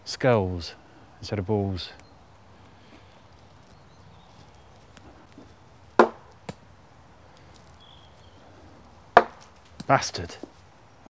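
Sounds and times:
wooden ball knocking wooden pot: 6.0 - 6.3, 9.2 - 9.5.

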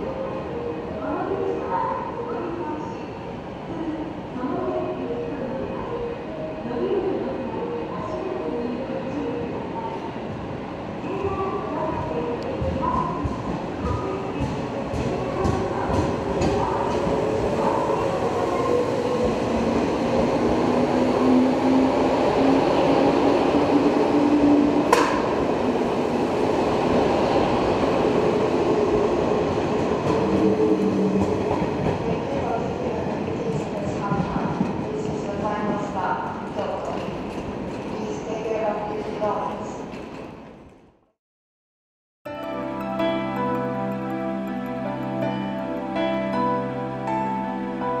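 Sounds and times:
rumbling train wheels: 11.3 - 40.8.

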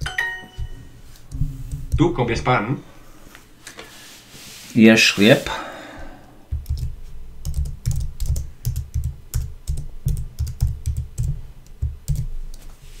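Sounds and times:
typing on computer keyboard: 6.5 - 12.3.

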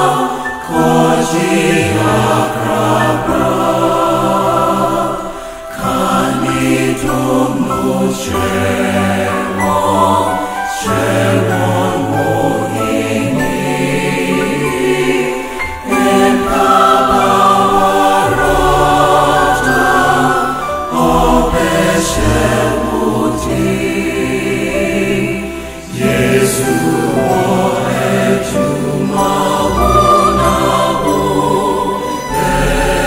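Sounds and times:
choir singing a hymn: 0.0 - 33.0.

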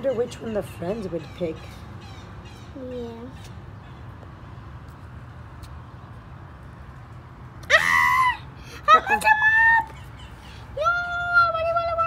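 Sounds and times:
person laughing: 7.7 - 10.2.

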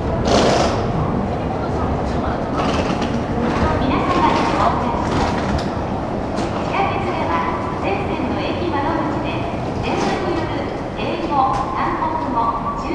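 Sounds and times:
people's voices: 0.0 - 12.9
subway train rumble: 0.0 - 12.9.

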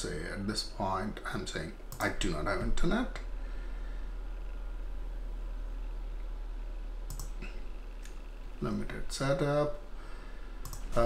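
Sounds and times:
steady low hum: 0.0 - 11.0
mouse click: 7.1 - 7.3, 10.6 - 10.9.

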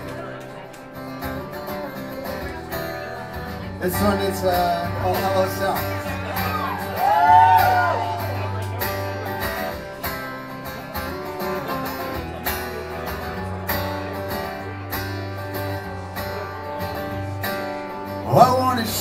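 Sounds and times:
acoustic guitar strumming: 0.0 - 19.0
man singing: 3.8 - 6.1, 18.2 - 19.0.

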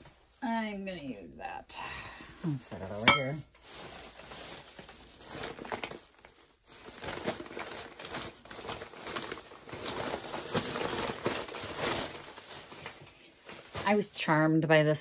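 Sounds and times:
plastic bag crinkling: 2.4 - 14.5.

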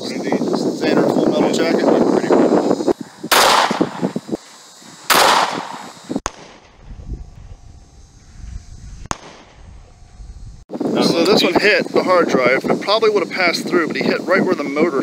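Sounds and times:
sharp quiet crack: 3.3 - 4.0, 5.1 - 6.8, 9.0 - 9.6
pistol shots: 3.3 - 4.1, 5.1 - 6.7, 9.1 - 9.4.

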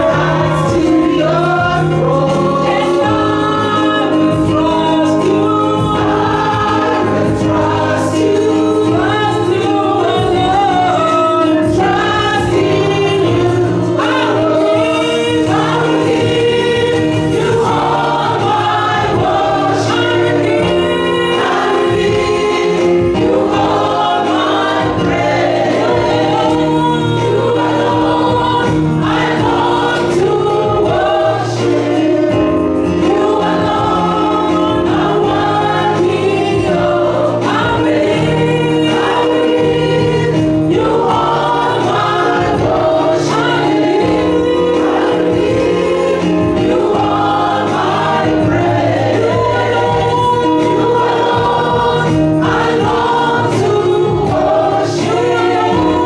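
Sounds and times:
backing vocalists singing: 0.0 - 56.0
electronic keyboard chords: 0.0 - 56.0
lead singer singing: 0.0 - 56.0.

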